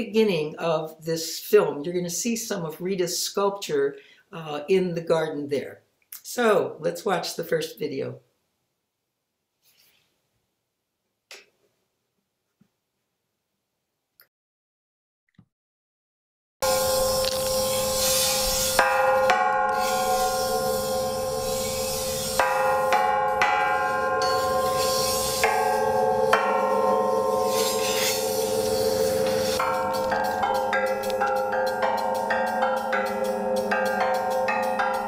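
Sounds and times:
bell-like chimes ringing: 16.6s - 35.0s
steady held tone: 16.6s - 35.0s.

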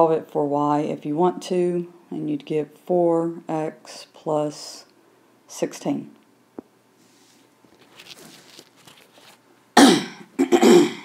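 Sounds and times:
person coughing: 9.8s - 11.0s.

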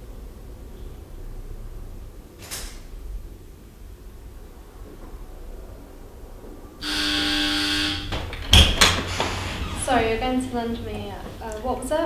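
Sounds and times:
door buzzer tone: 6.8s - 8.3s
door clunks: 8.1s - 10.0s.

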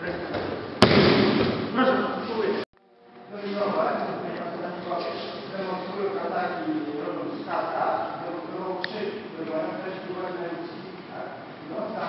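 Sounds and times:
body slapping onto mat: 0.8s - 1.7s.

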